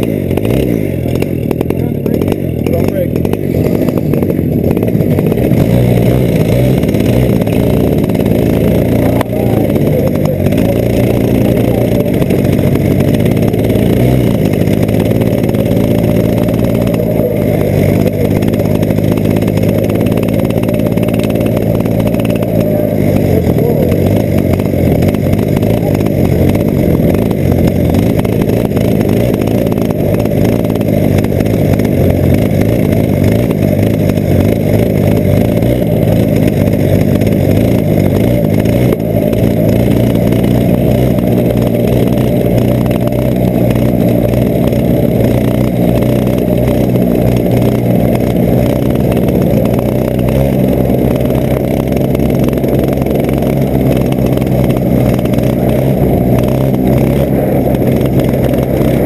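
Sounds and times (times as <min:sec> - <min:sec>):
kart engine running: 0:00.0 - 0:59.0.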